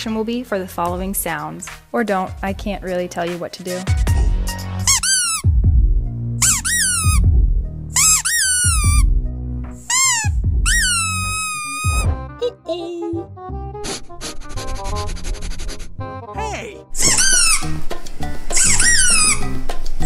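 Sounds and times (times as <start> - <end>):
music with steady beat: 0.0 - 12.4, 17.0 - 20.0
squeaky dog toy squeaking: 4.9 - 5.5, 6.4 - 7.3, 8.0 - 9.1, 9.8 - 12.2, 17.0 - 17.8, 18.5 - 19.6.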